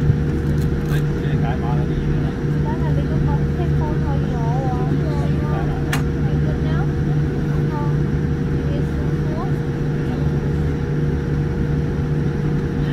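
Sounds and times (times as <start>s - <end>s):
airplane cabin drone: 0.0s - 12.9s
idling engines hum: 0.0s - 12.9s.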